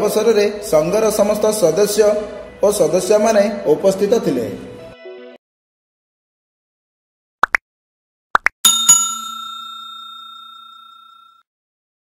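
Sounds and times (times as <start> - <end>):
bell ding: 8.7 - 11.5.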